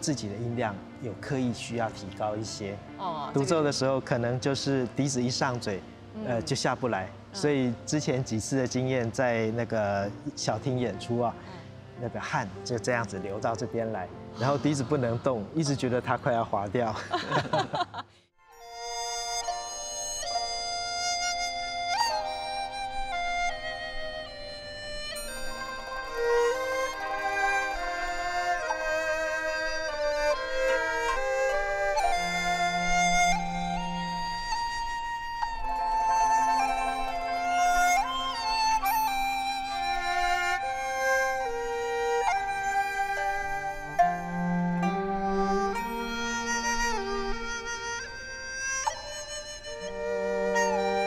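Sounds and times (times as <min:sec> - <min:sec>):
bamboo flute long notes: 0:18.6 - 0:51.0
traditional instrument ensemble: 0:18.6 - 0:51.0.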